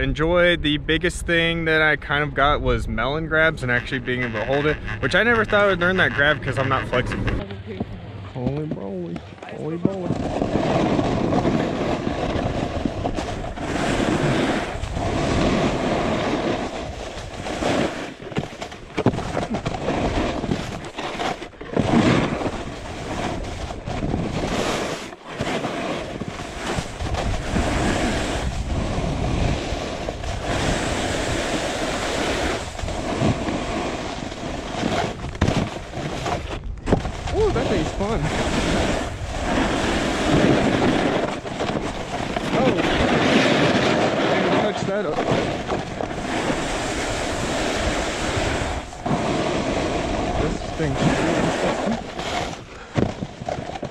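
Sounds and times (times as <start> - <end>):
wind buffeting microphone: 0.0 - 53.9
snowboard scraping over snow: 1.0 - 7.8, 9.4 - 53.9.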